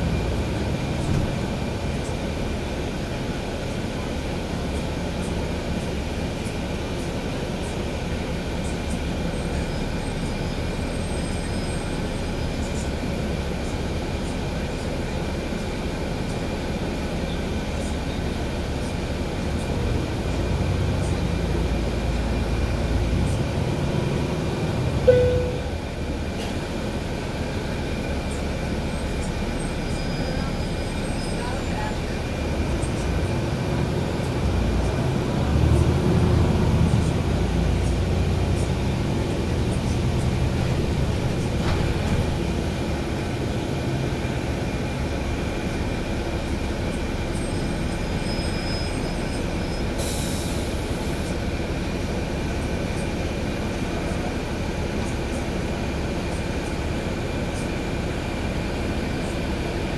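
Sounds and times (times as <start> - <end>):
bus engine humming: 0.0 - 59.9
short beep: 25.1 - 25.8.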